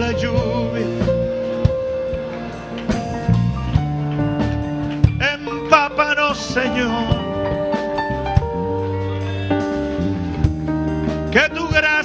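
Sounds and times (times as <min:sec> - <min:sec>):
person singing: 0:00.0 - 0:01.5, 0:05.2 - 0:09.8
bass line: 0:00.0 - 0:12.0
keyboard sustained chords: 0:00.0 - 0:12.0
drum hits: 0:06.9 - 0:12.0.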